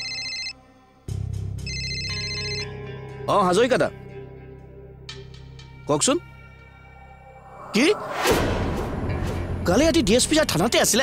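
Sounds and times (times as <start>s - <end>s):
phone ringtone trilling: 0.0s - 0.6s, 1.6s - 2.8s
low background music drone: 0.0s - 11.0s.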